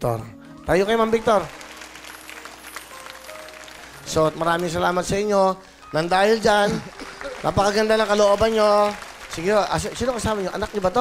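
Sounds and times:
background music: 0.0s - 11.0s
studio audience applauding: 0.6s - 5.3s, 6.0s - 11.0s.

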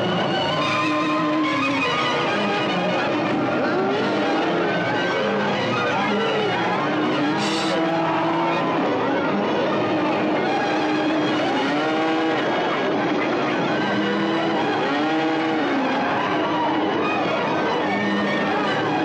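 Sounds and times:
loud steady rushing noise: 0.0s - 19.0s.

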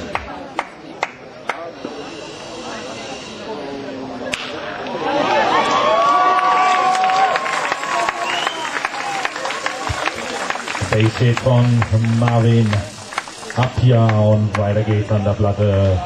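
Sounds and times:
baseball bat cracking ball: 4.3s - 4.7s
crowd cheering and shouting: 4.7s - 13.7s.

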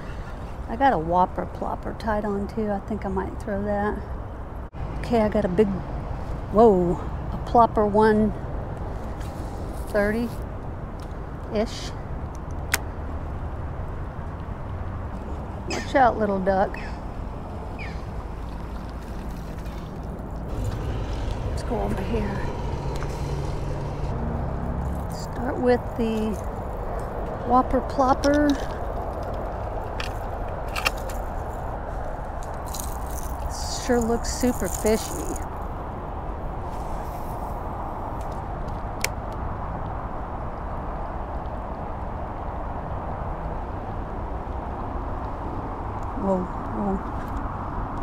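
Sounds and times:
distant road traffic rumble: 0.0s - 48.0s
faint engine hum: 0.0s - 48.0s.

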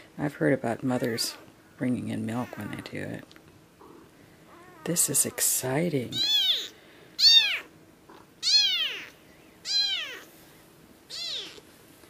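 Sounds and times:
kittens mewing: 6.1s - 10.3s, 11.1s - 11.7s.

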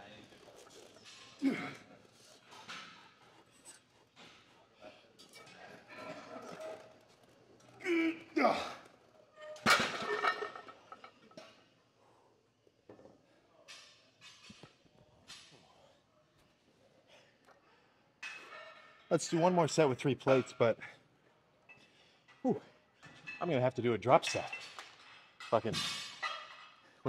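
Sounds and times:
man grunting and groaning: 1.4s - 1.8s, 7.8s - 8.8s.

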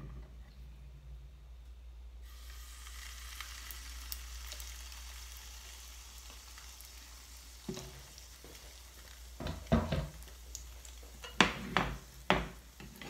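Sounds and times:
batter sizzling in hot oil: 2.2s - 13.0s
crackles and pops: 2.8s - 9.4s, 10.1s - 11.2s.

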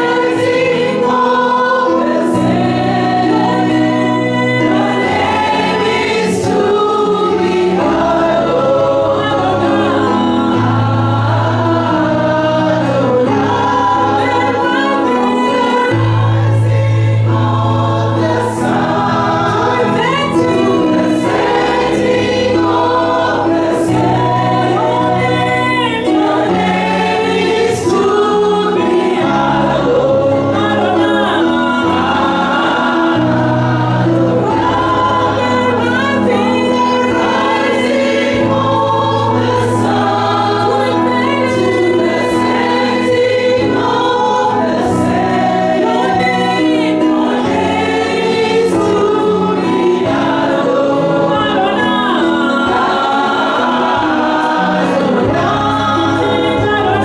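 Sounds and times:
voices singing along: 0.0s - 57.0s
woman singing into a microphone: 19.5s - 21.3s, 23.5s - 32.4s, 34.4s - 57.0s.

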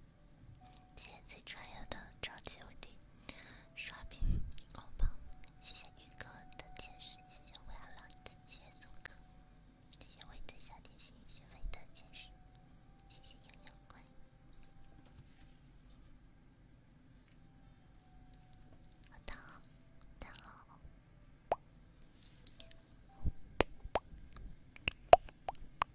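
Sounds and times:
woman whispering: 0.7s - 9.3s, 10.0s - 12.4s, 13.0s - 14.2s, 19.0s - 20.8s
wet mouth clicks: 24.3s - 25.9s.

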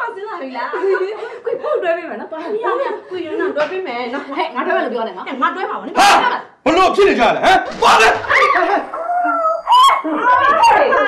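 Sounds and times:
agitated talking: 4.8s - 11.0s.

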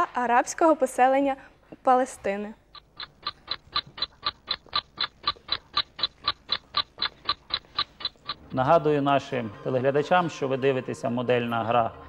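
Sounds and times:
countdown timer ticking: 2.6s - 8.9s.

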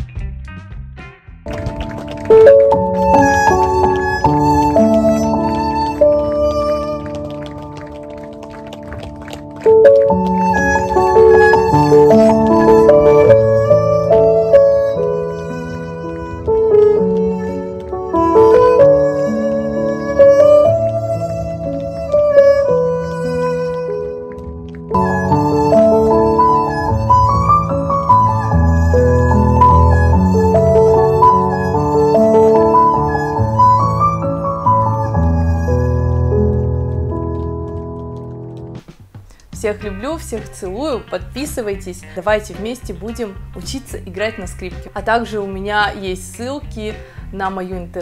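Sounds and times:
steady bass notes: 0.0s - 5.0s, 36.4s - 48.0s
backing track chords: 1.5s - 48.0s
electric violin bowed: 1.6s - 37.8s.

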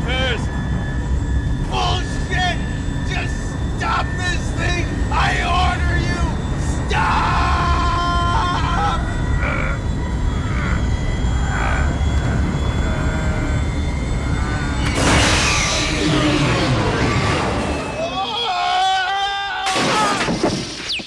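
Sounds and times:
deep steady rumble: 0.0s - 18.1s
loud rushing screech: 0.0s - 19.8s.

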